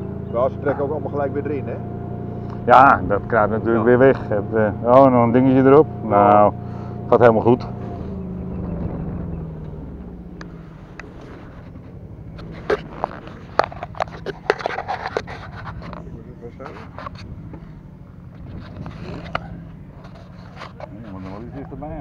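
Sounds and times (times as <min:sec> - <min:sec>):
engine humming: 0:00.0 - 0:22.0
sharp clicks and scrapes: 0:10.4 - 0:21.8.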